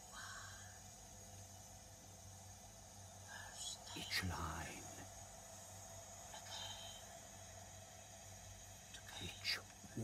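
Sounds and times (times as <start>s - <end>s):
faint steady hum: 0.0s - 10.0s
person whispering: 3.3s - 5.1s, 8.9s - 10.0s.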